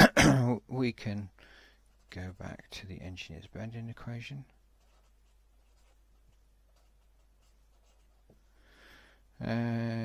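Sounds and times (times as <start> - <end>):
marker pen scratching on paper: 4.7 - 8.5.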